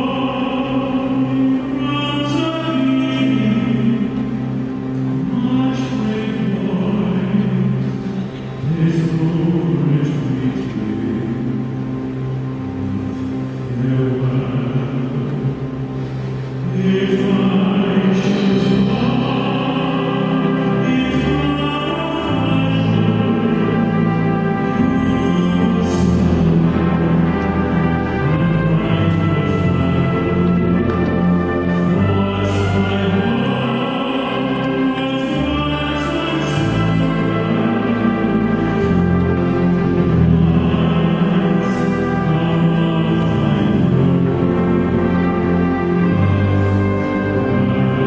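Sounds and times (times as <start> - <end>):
operatic tenor singing: 0.0 - 48.0
military band playing: 0.2 - 48.0.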